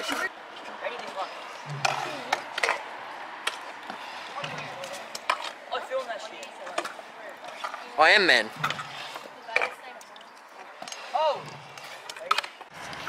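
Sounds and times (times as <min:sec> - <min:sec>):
scooter decks clacking on ground: 0:00.0 - 0:13.0
scooters rolling on concrete: 0:00.0 - 0:13.0.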